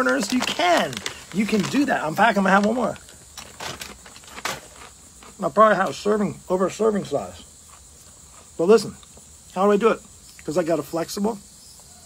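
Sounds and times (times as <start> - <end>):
corn chip crunching: 0.0 - 6.0.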